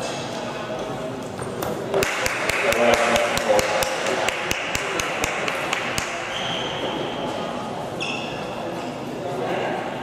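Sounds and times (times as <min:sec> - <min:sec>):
crowd voices: 0:00.0 - 0:10.0
spectators clapping and cheering: 0:02.0 - 0:06.2.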